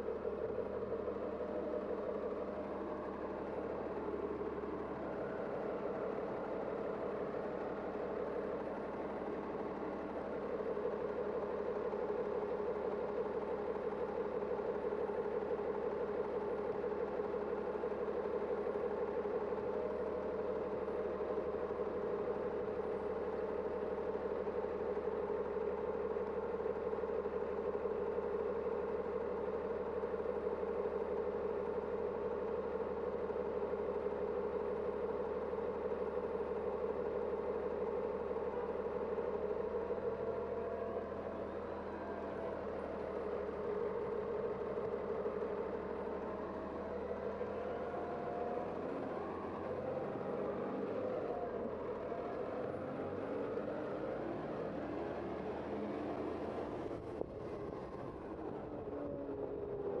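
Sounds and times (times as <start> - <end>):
bus accelerating away: 0.0 - 60.0
bus engine idling: 0.0 - 60.0.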